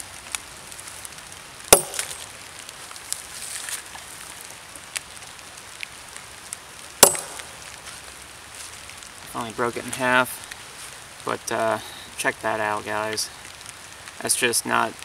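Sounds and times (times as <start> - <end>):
machete chopping into log: 1.7 - 2.2, 7.0 - 7.5
small clicks and rustles: 2.0 - 6.8.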